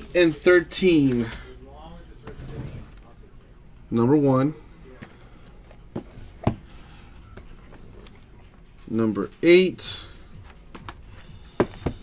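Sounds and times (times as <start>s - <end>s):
cardboard boxes knocking on table: 11.6s - 12.0s.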